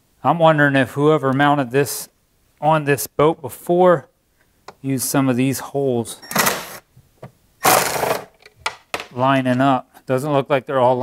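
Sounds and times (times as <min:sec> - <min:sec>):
cordless drill running: 0:07.6 - 0:08.3.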